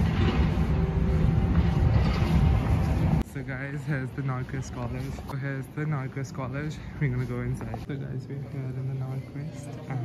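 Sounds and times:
construction machinery rumble: 0:00.0 - 0:04.2.

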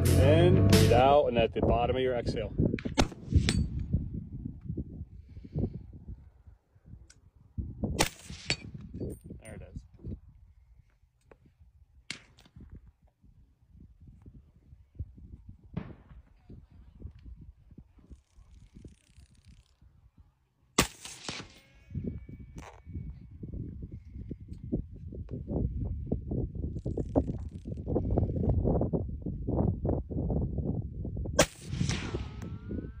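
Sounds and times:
wind on microphone: 0:00.0 - 0:20.3, 0:21.8 - 0:33.0
rifle shots echoing: 0:03.0 - 0:03.7, 0:20.8 - 0:21.8.

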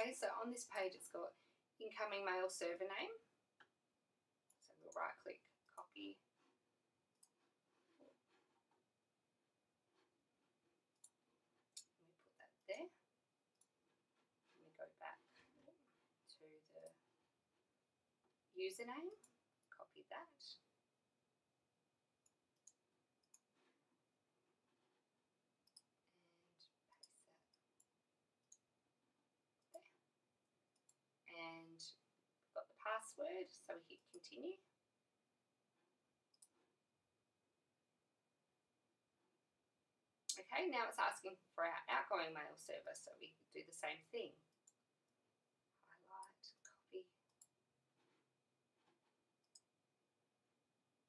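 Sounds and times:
computer mouse clicks: 0:25.6 - 0:26.0, 0:36.3 - 0:36.6.

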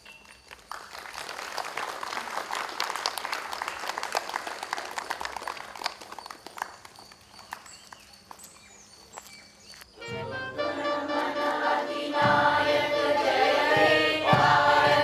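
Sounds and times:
crowd applauding: 0:00.0 - 0:07.7.

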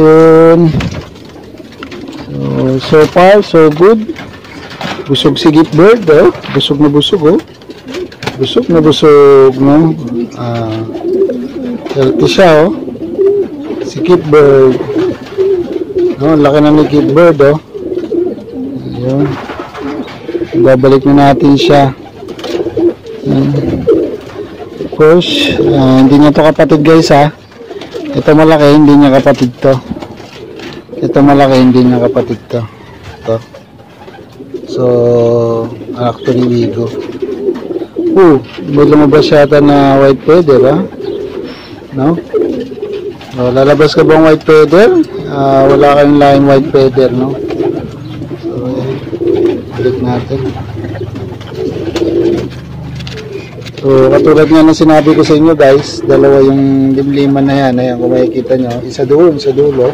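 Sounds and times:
pigeons cooing: 0:00.0 - 0:59.9.

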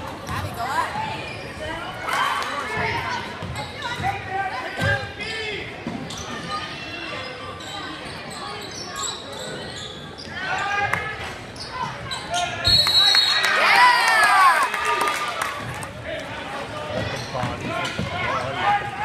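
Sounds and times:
voices echoing in gymnasium: 0:00.0 - 0:19.0
basketball bouncing on court: 0:03.4 - 0:04.2.

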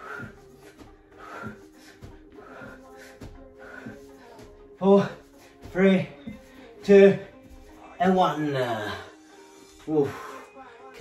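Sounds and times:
man breathing hard: 0:00.0 - 0:08.0
feet thudding on rug: 0:00.0 - 0:08.3
faint background music: 0:00.0 - 0:11.0.

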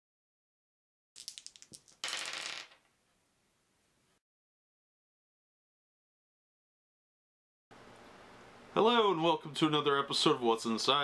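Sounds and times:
plastic dice clattering on wood: 0:01.2 - 0:02.9.

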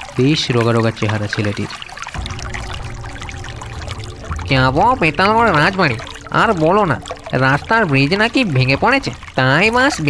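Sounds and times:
flowing river water: 0:00.0 - 0:10.0.

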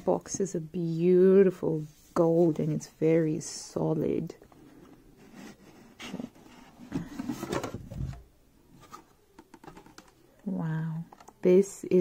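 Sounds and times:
cardboard scraping and rubbing: 0:05.2 - 0:08.2.

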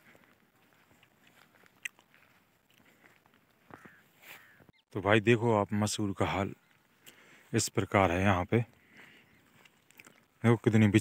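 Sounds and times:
rustling and crunching of plants: 0:00.0 - 0:04.6.

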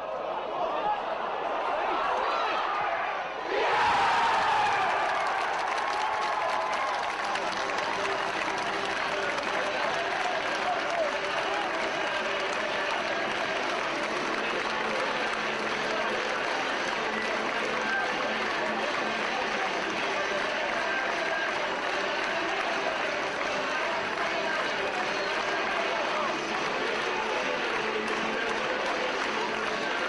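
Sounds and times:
crowd cheering and shouting: 0:00.0 - 0:30.0
crowd clapping: 0:03.7 - 0:30.0.

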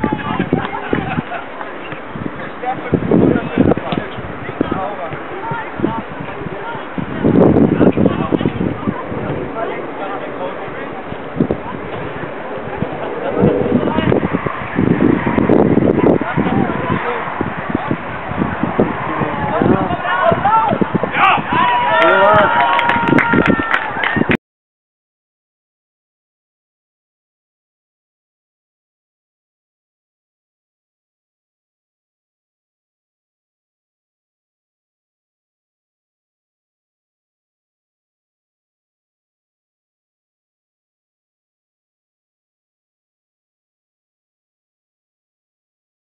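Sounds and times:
voices calling out: 0:00.0 - 0:24.3
voices shouting: 0:12.6 - 0:24.3.

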